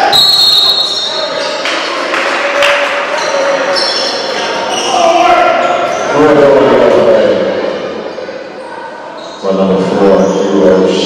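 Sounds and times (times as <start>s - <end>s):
loud voices in gymnasium: 0.0s - 11.0s.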